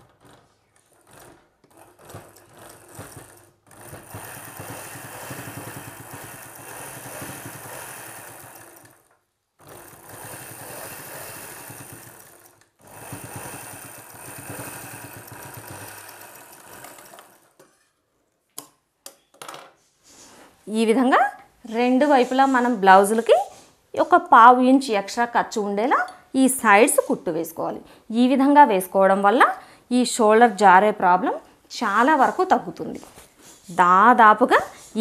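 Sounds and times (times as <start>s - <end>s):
sewing machine stitching: 0.0s - 17.8s.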